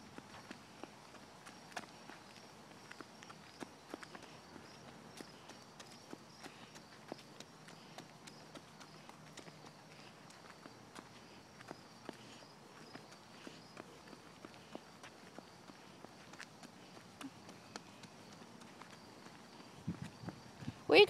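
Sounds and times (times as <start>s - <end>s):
footsteps on concrete: 0.0s - 20.9s.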